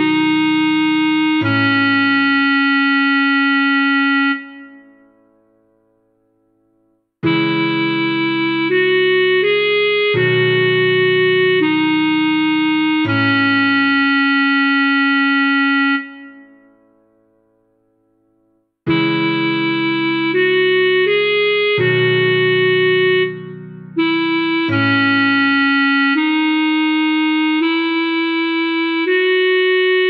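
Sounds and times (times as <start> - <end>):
clarinet long note: 0.0 - 4.9, 7.2 - 16.6, 18.9 - 30.0.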